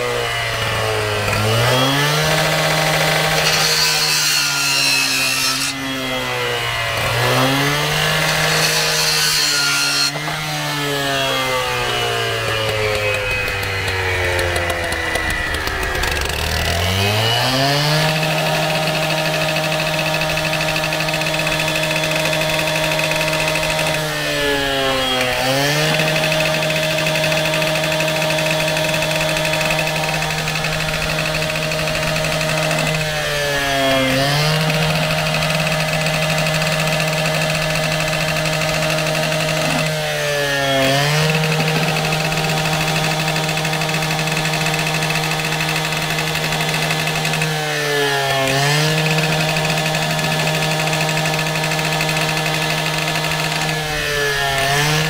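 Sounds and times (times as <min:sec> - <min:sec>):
cut-off saw cutting pipe: 0:00.0 - 0:55.0.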